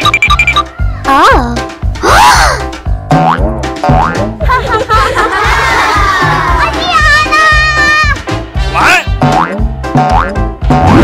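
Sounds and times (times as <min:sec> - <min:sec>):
cartoon springy boings: 0:00.0 - 0:00.8
upbeat children's music: 0:00.0 - 0:11.0.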